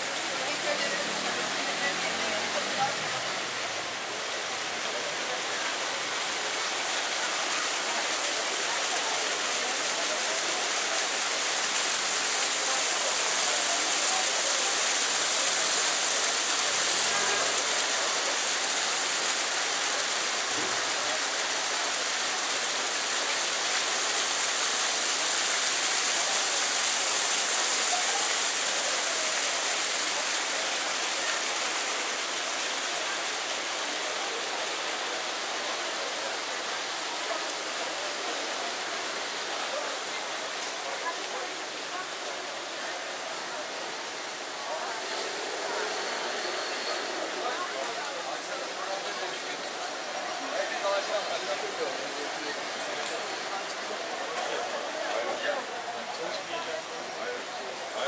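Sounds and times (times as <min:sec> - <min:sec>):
fountain splashing into basin: 0:00.0 - 0:58.0.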